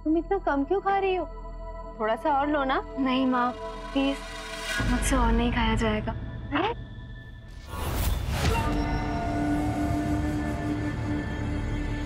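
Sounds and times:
dramatic background score: 0:00.0 - 0:12.0.

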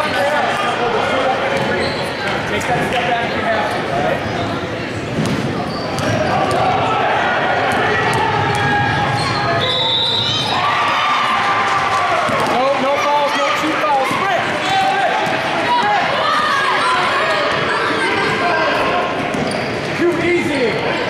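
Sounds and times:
spectators talking and calling out: 0:00.0 - 0:21.0
shoe squeaks: 0:01.6 - 0:02.4, 0:05.6 - 0:06.3, 0:19.3 - 0:20.0
basketball bouncing: 0:07.6 - 0:09.2, 0:12.2 - 0:12.6.

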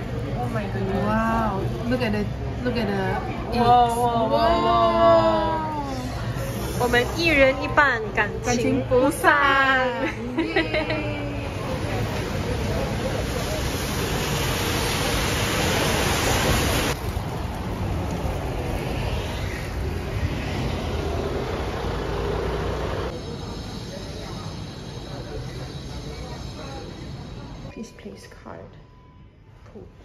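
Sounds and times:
street traffic noise: 0:00.0 - 0:30.0
faint high-pitched tones: 0:23.2 - 0:30.0.

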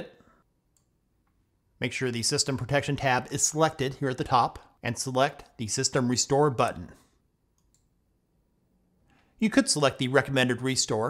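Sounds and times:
computer mouse click: 0:00.7 - 0:01.4, 0:07.5 - 0:08.0.

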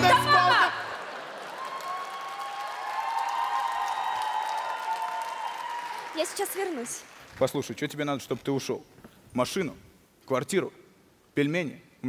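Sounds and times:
studio audience applauding: 0:00.0 - 0:07.8.

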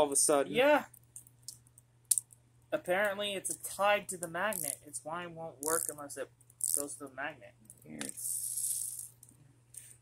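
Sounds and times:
plastic toys rattling and clicking: 0:05.7 - 0:06.0.

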